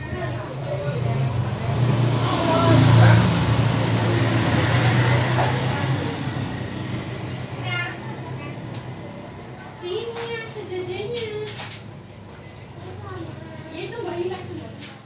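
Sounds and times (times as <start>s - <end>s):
motor vehicle passing: 0.0s - 15.0s.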